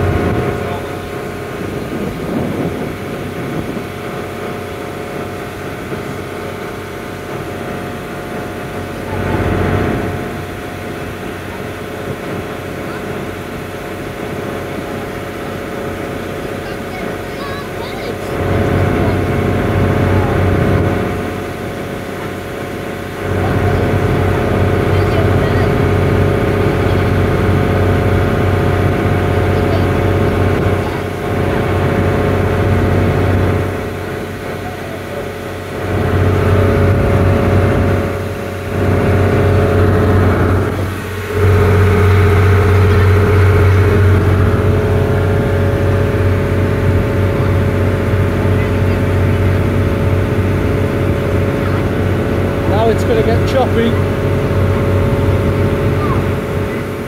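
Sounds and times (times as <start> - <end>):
boat engine droning: 0.0 - 57.0
wake rushing along hull: 0.0 - 57.0.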